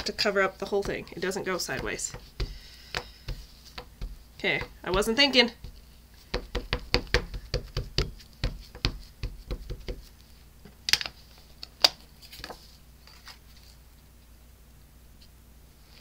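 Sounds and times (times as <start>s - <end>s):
ink pad tapping on stamp: 1.6s - 10.1s.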